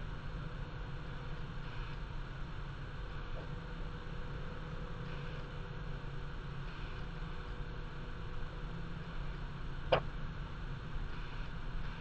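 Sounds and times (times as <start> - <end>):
constant hiss: 0.0 - 12.0
steady low hum: 0.0 - 12.0.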